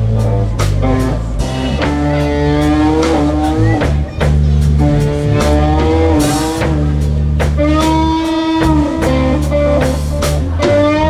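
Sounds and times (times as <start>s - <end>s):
lead guitar bent notes: 0.0s - 11.0s
live blues band playing: 0.0s - 11.0s.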